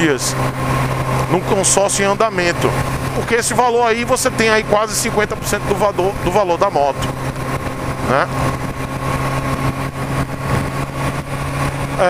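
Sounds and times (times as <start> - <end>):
motorcycle engine cruising: 0.0 - 12.0
wind and road noise: 0.0 - 12.0.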